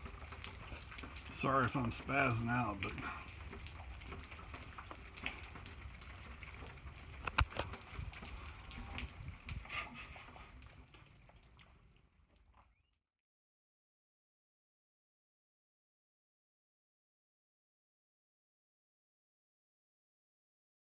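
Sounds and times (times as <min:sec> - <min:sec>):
drops ticking: 0:00.0 - 0:12.6
rain pattering: 0:00.0 - 0:13.0.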